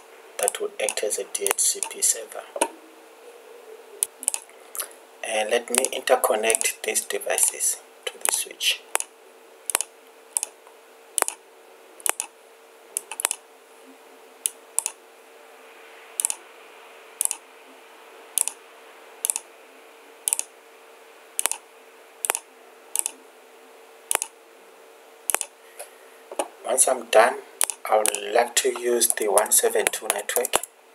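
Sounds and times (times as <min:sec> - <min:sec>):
faint steady hum: 0:00.0 - 0:30.9
computer mouse clicking: 0:00.4 - 0:02.0, 0:04.0 - 0:04.5, 0:05.7 - 0:06.7, 0:08.2 - 0:09.1, 0:09.7 - 0:10.5, 0:11.2 - 0:11.4, 0:12.0 - 0:12.3, 0:13.0 - 0:13.4, 0:14.8 - 0:15.0, 0:16.2 - 0:16.4, 0:17.2 - 0:17.4, 0:18.4 - 0:18.6, 0:19.2 - 0:19.4, 0:20.3 - 0:20.5, 0:21.4 - 0:21.6, 0:22.2 - 0:22.4, 0:23.0 - 0:23.2, 0:24.1 - 0:24.3, 0:25.3 - 0:25.5, 0:27.6 - 0:28.2, 0:30.1 - 0:30.7.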